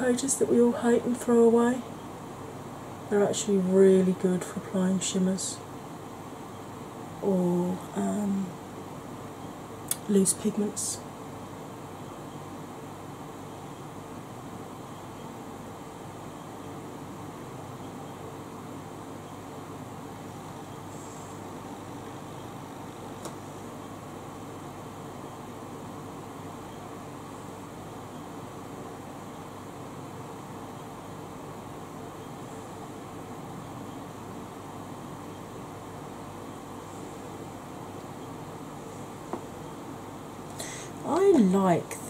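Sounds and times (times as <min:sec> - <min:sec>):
electric fan running: 0:00.0 - 0:42.0.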